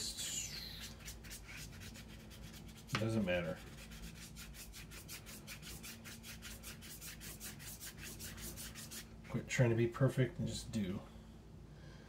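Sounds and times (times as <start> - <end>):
pencil scribbling on paper: 0.0 - 3.0, 3.6 - 9.1.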